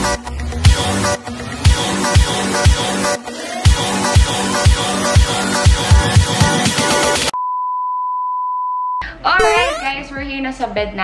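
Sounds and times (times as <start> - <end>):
electronic dance music: 0.0 - 7.3, 9.4 - 9.9.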